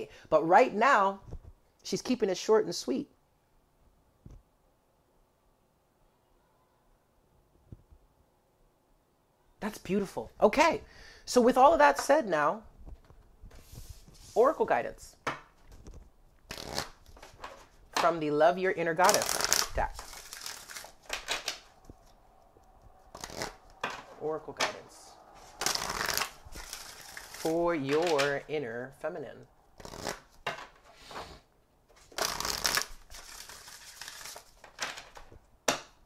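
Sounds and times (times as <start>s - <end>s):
cards scraping and rustling: 15.6s - 18.1s, 19.0s - 24.8s, 25.4s - 28.4s, 29.8s - 35.4s.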